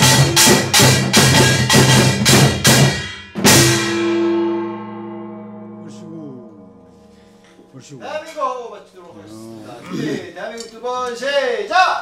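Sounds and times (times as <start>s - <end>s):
large brass gong ringing: 3.7s - 8.1s.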